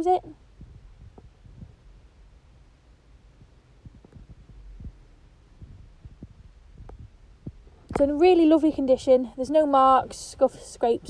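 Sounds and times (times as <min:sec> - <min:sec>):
soft low thumps: 0:00.0 - 0:09.6.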